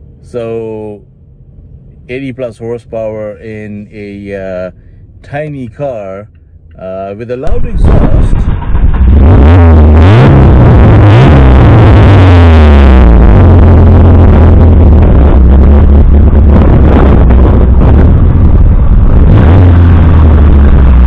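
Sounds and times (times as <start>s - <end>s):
car engine revving: 7.4s - 21.0s.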